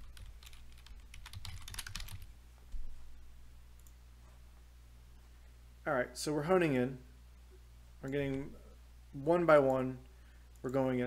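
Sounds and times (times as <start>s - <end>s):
keyboard typing: 0.0s - 2.3s.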